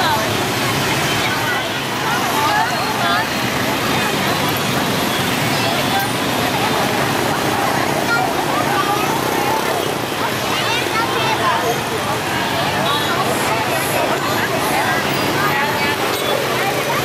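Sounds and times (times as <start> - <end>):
many people talking: 0.0 - 17.0
motorbike traffic rumble: 0.0 - 17.0.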